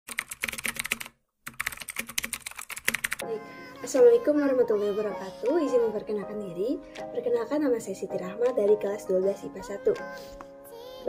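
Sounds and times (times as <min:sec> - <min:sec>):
keyboard typing clicks: 0:00.1 - 0:03.2.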